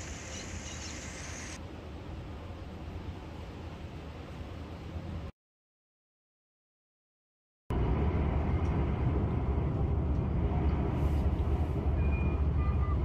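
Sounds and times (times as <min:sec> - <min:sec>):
vehicle rumble with road noise: 0:07.7 - 0:13.0.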